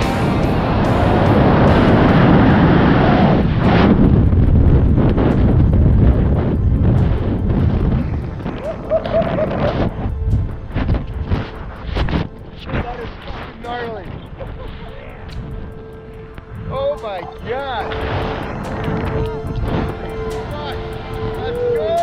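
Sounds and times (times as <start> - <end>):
wind rushing over microphone: 0.0 - 22.0.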